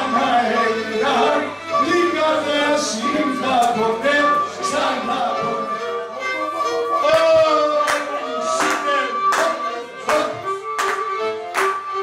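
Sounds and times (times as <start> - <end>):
man singing: 0.0 - 6.2, 6.9 - 10.6
lyra playing lively tune: 3.0 - 12.0
hand claps: 7.1 - 11.8.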